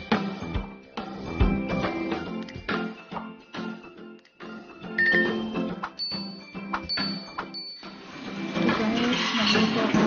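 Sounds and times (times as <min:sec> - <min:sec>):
background music: 0:00.0 - 0:10.0
high bell-like ding: 0:05.0 - 0:07.9.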